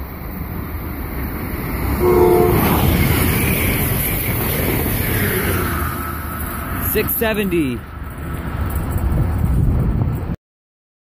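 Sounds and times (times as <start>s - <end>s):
train rushing past: 0.0s - 10.3s
train horn blast: 2.0s - 3.0s.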